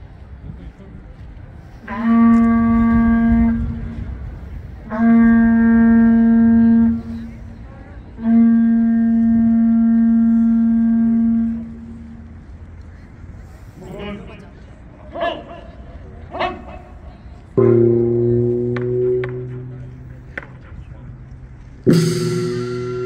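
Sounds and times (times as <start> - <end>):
horn blasts: 1.7 - 12.8, 17.6 - 20.6, 21.8 - 23.0.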